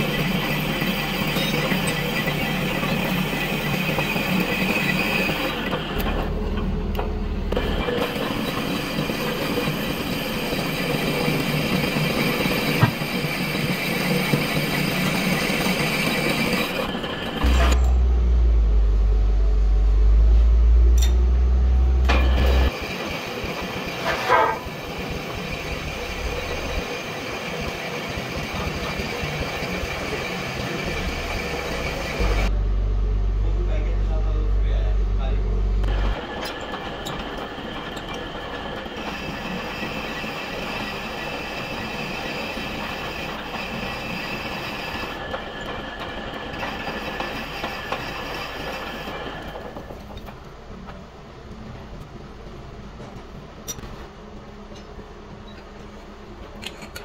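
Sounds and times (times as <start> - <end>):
cutting tool squeal: 0.0 - 6.2, 7.6 - 17.9, 23.8 - 32.5
metal lathe whining: 0.0 - 18.3, 21.0 - 32.5, 35.8 - 50.2
heavy low rumble: 6.0 - 8.0, 17.4 - 22.7, 30.6 - 36.1.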